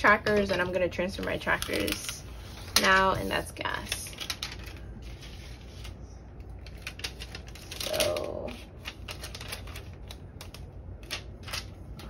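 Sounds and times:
plastic and paper handled on desk: 0.2s - 12.0s.

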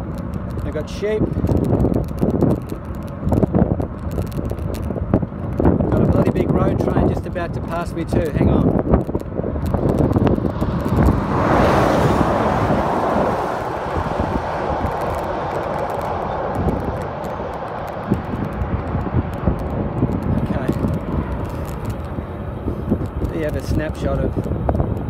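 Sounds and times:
wind rumble on microphone: 0.0s - 25.0s
truck passing close by: 9.4s - 23.0s.

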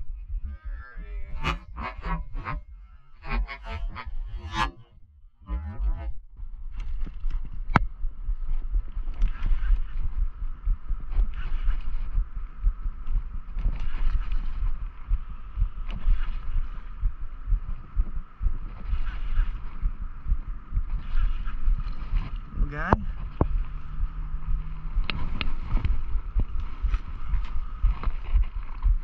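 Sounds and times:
handling rumble: 0.0s - 29.0s
wind on microphone: 0.0s - 29.0s.

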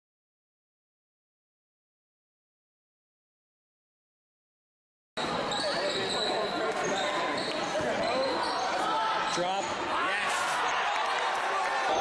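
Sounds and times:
voices echoing in gym: 5.2s - 12.0s.

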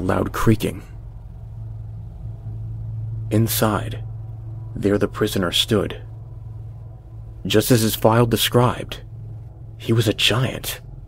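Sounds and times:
low rumbling drone: 0.0s - 11.0s.

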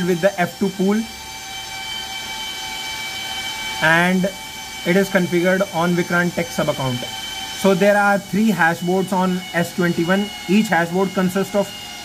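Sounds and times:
cooling fans rushing hum: 0.0s - 12.0s
fixed whining tones: 0.0s - 12.0s.

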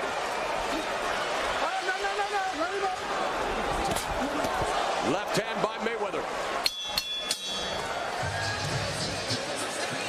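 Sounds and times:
arena crowd noise: 0.0s - 10.0s
boxing ring bell ringing: 6.6s - 7.9s.

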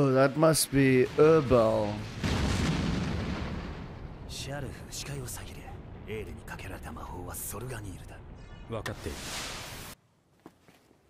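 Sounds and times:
low rumbling blast effect: 0.8s - 9.6s.

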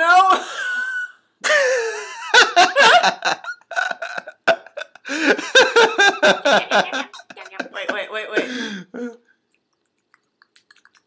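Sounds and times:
man and woman laughing: 0.4s - 8.7s.

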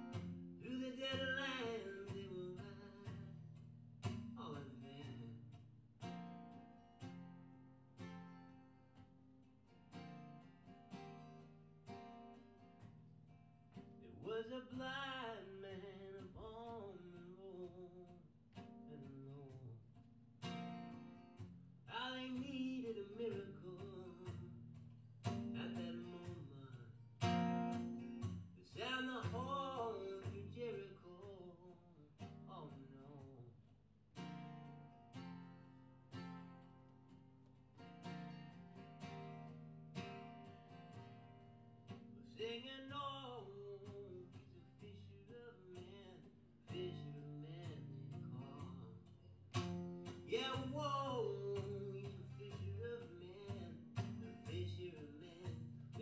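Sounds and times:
acoustic guitars picked and strummed: 0.0s - 56.0s
man singing: 0.6s - 3.4s, 4.2s - 5.5s, 14.0s - 19.7s, 21.9s - 24.5s, 25.3s - 26.9s, 28.6s - 33.5s, 42.2s - 49.1s, 50.0s - 56.0s.

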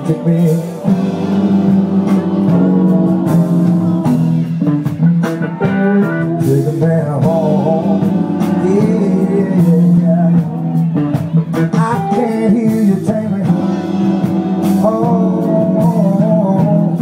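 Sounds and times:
man singing: 0.0s - 4.3s, 6.0s - 17.0s
live band with electric guitars: 0.0s - 17.0s.

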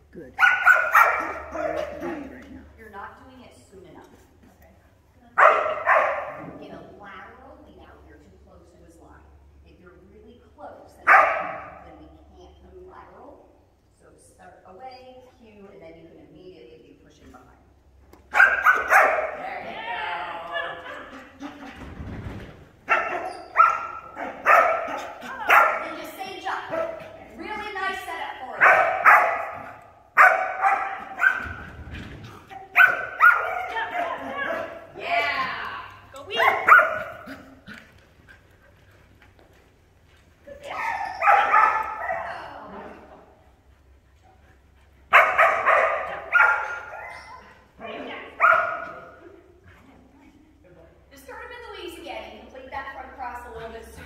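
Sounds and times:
dog barking: 0.4s - 2.1s, 5.4s - 6.4s, 11.1s - 11.8s, 18.3s - 19.4s, 22.9s - 26.0s, 28.6s - 31.6s, 32.7s - 34.9s, 36.4s - 37.4s, 40.8s - 42.3s, 45.1s - 47.4s, 48.3s - 49.1s.

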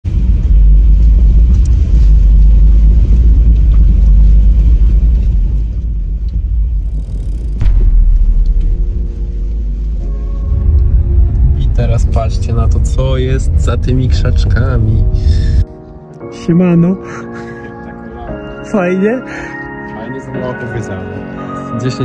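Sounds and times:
vehicle cabin rumble: 0.0s - 15.6s
sharp knock: 7.4s - 9.4s.

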